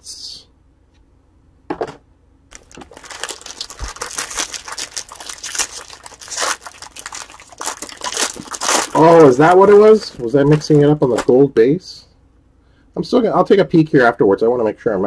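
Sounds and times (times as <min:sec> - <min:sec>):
foil wrapper crinkling: 0:02.5 - 0:11.3.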